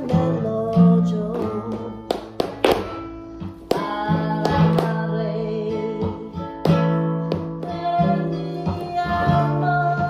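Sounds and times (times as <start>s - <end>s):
flamenco guitar music: 0.0s - 10.0s
dance shoes stamping on floor: 1.3s - 5.2s, 6.0s - 9.5s.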